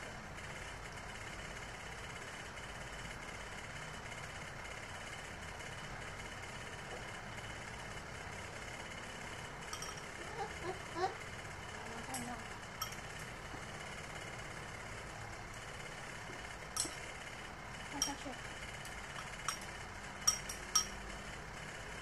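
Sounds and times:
electric fan whirring: 0.0 - 22.0
spoon clinking in ceramic bowl: 9.7 - 10.0, 12.8 - 13.0, 16.8 - 17.0, 19.2 - 21.0.

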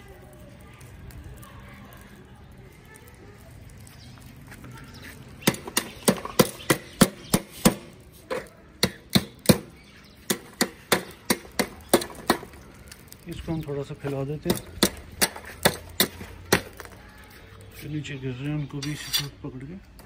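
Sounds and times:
tongs clicking on charcoal grill: 0.0 - 17.8.

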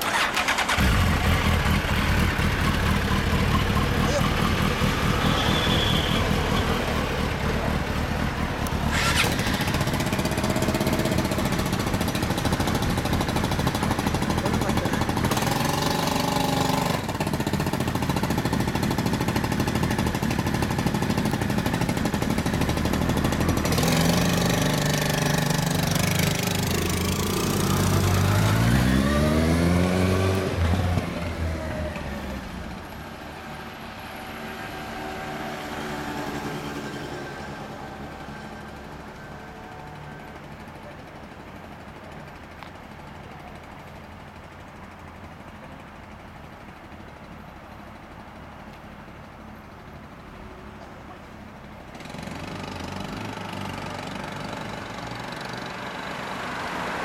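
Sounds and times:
motorcycle engine idling and revving: 0.0 - 57.0.

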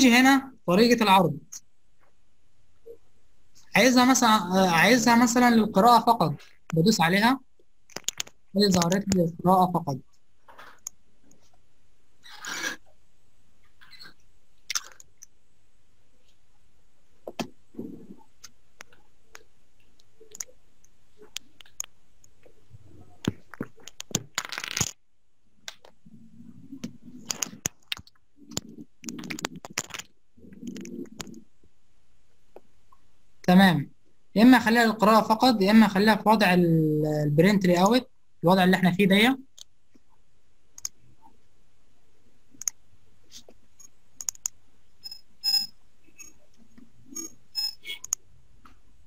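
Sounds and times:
computer mouse clicking: 26.8 - 31.4, 43.8 - 44.6, 47.2 - 48.2
computer mouse clicks: 43.8 - 44.6, 47.2 - 48.2.

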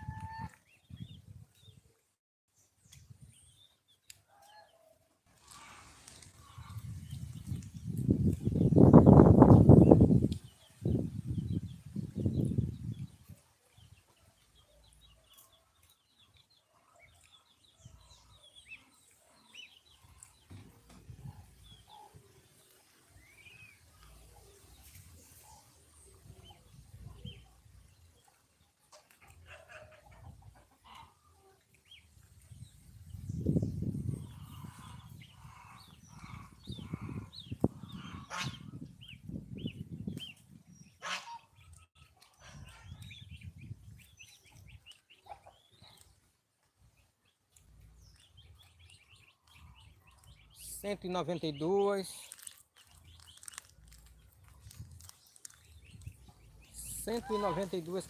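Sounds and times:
chicks peeping and chirping: 5.4 - 58.0.

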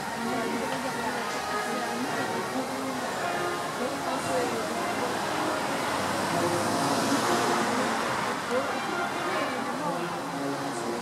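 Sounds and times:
traffic noise: 0.0 - 11.0.

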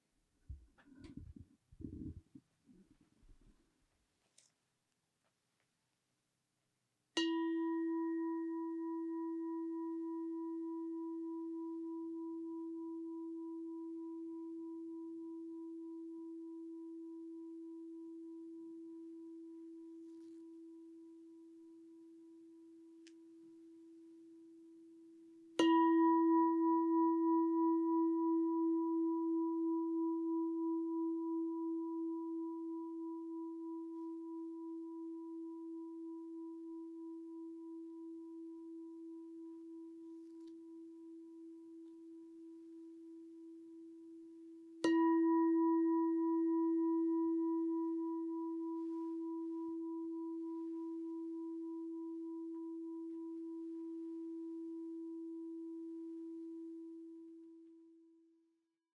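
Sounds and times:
singing bowl ringing: 7.2 - 22.2, 25.6 - 57.4.

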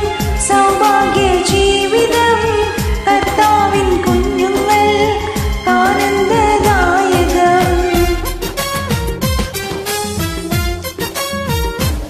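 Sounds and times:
karaoke backing track: 0.0 - 12.0
woman singing devotional song: 0.3 - 8.3
drum strokes dropping in pitch: 5.7 - 10.8.

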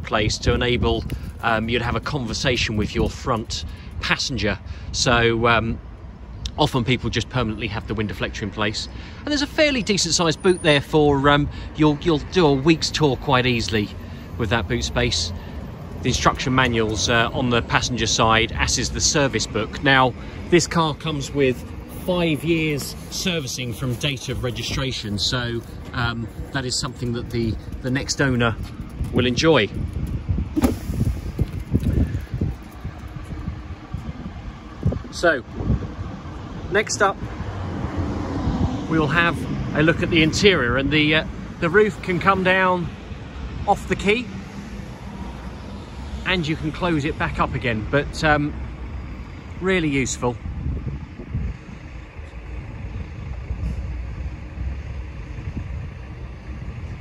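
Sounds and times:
wind buffeting microphone: 0.0 - 6.0, 13.1 - 42.4, 48.5 - 57.0
low uneven rumble: 13.4 - 37.5, 46.6 - 57.0.

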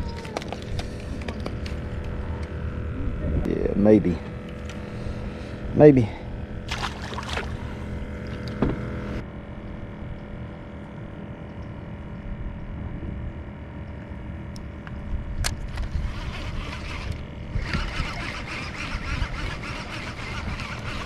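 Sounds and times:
boat motor humming: 0.0 - 21.0.

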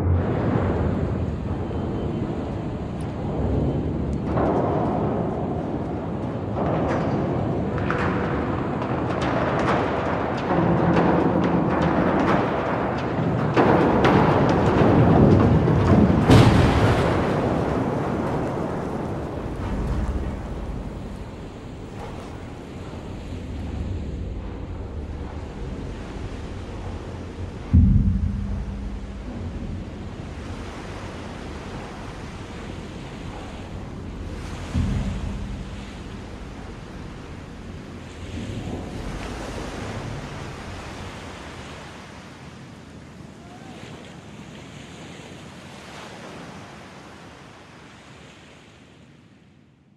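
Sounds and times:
surf: 0.0 - 49.3
wind: 0.0 - 49.9
steel collapsing with heavy crashes: 6.6 - 40.8
low metallic ringing: 14.8 - 41.0.

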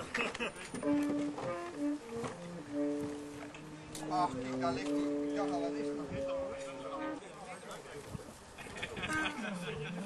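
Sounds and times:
wind instrument playing held notes: 0.6 - 7.8, 9.0 - 10.0.

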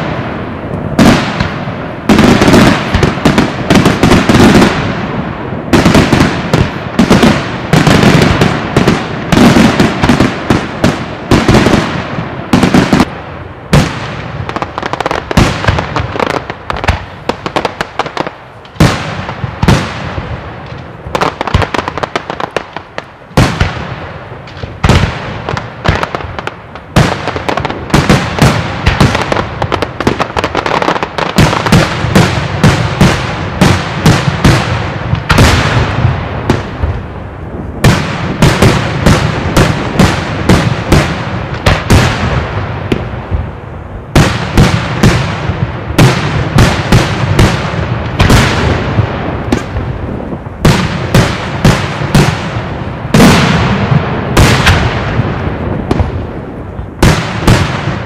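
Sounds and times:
fireworks bursting with loud bangs: 0.0 - 58.0.

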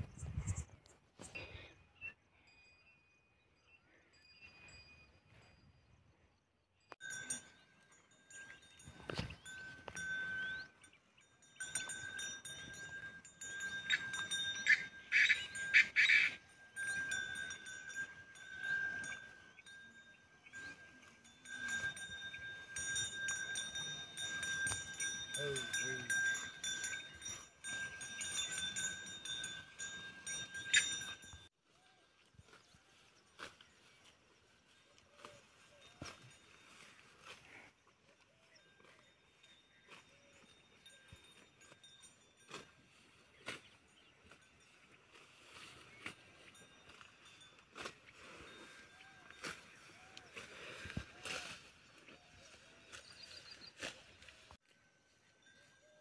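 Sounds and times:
cattle bells ringing: 1.6 - 5.6, 7.0 - 56.0.

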